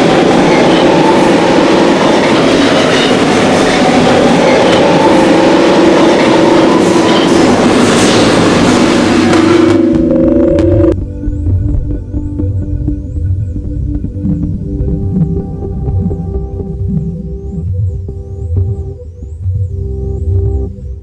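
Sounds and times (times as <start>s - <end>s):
rumbling and rattling noise: 0.0s - 21.0s
wavering long-held tones: 9.0s - 21.0s.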